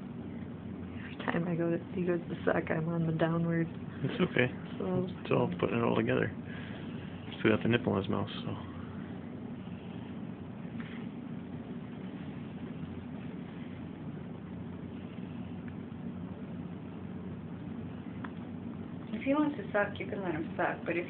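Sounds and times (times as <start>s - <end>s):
low room hum: 0.0s - 21.0s.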